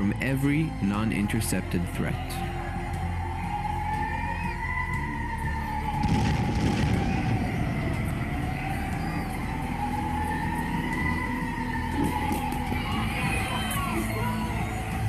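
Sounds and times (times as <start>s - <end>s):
warning siren wailing: 0.0s - 15.0s
loud burst of noise: 6.0s - 11.1s.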